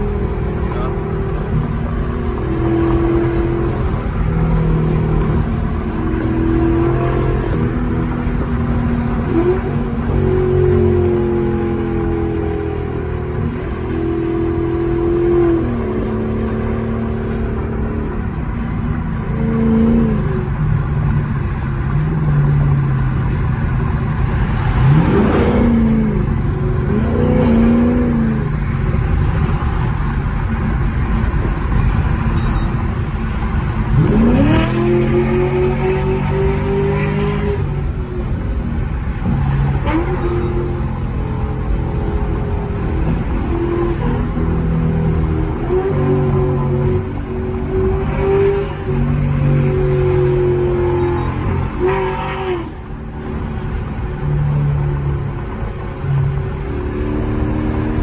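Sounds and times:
car engine drone: 0:00.0 - 0:58.0
road rumble: 0:00.0 - 0:58.0.

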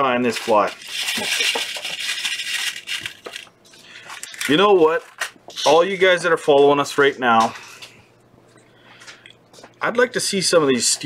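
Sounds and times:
rustling and rattling materials: 0:00.0 - 0:05.9.

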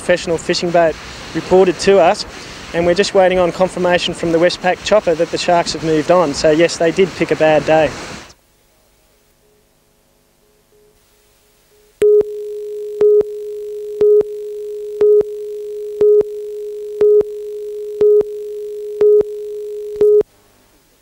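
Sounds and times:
steady line-up tone: 0:10.3 - 0:20.3
countdown beeps: 0:12.0 - 0:20.2.

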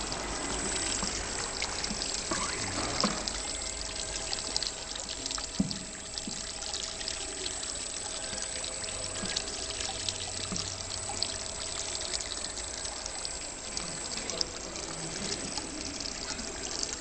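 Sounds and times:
low steady machine hum: 0:00.0 - 0:17.0
water trickling and dripping: 0:00.0 - 0:17.0.

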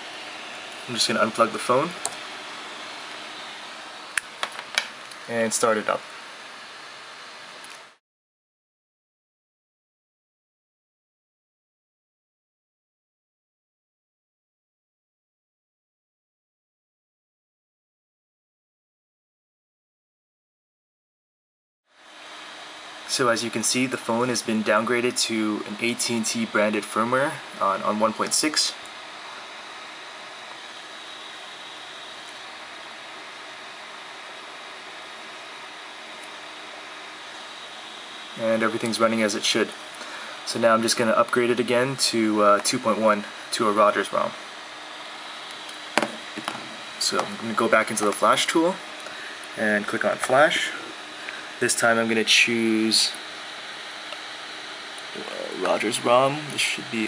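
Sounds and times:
room tone hiss: 0:00.0 - 0:08.0, 0:22.0 - 0:57.0.

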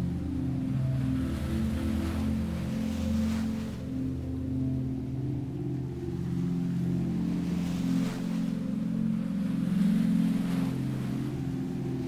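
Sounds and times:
low drone chords: 0:00.0 - 0:12.0
ocean waves: 0:00.0 - 0:12.0.

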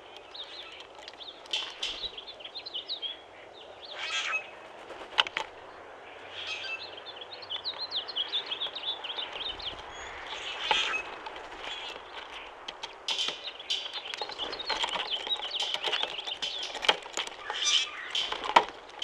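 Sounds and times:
birds chirping: 0:00.0 - 0:19.0.

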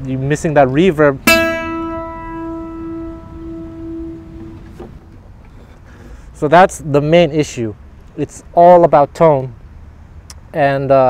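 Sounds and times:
acoustic guitar note ringing: 0:01.2 - 0:05.1.

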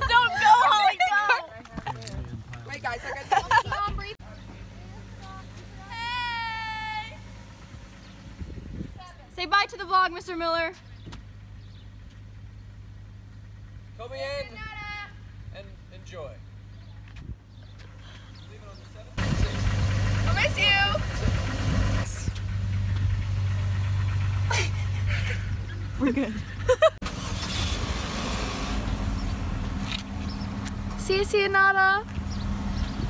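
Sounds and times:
vehicle engine idling: 0:00.0 - 0:33.0.

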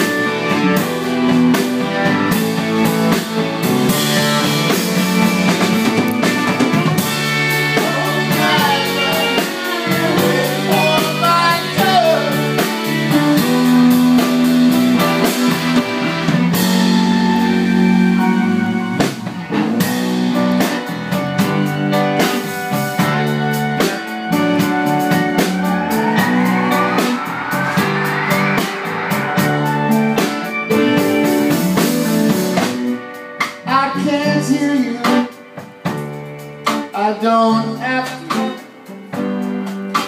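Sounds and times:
piano with band: 0:00.0 - 0:40.0
rising sweep: 0:24.6 - 0:32.8.

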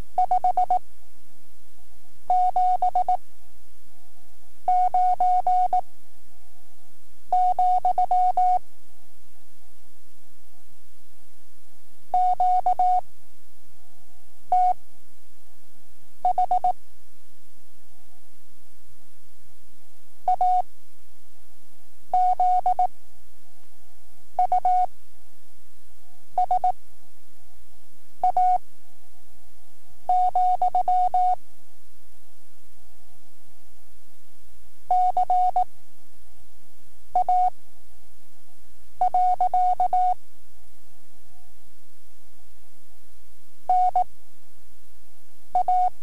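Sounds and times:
tape hiss and hum: 0:00.0 - 0:46.0.

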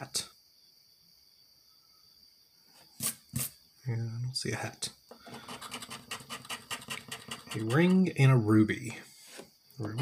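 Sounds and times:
disc scraping scratch-off ticket: 0:05.3 - 0:08.1.

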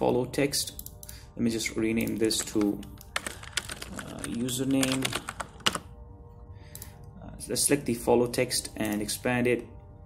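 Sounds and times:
computer keyboard keys clicking: 0:02.0 - 0:05.9.

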